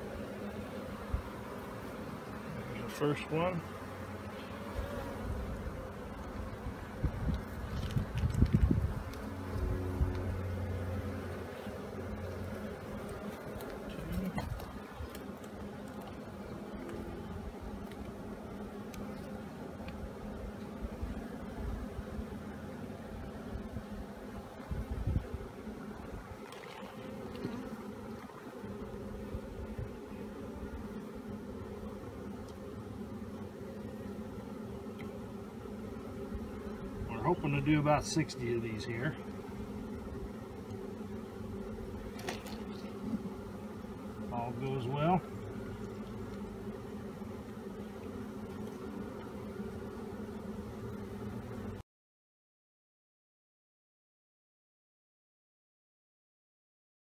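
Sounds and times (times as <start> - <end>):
honeybees buzzing: 0.0 - 51.8.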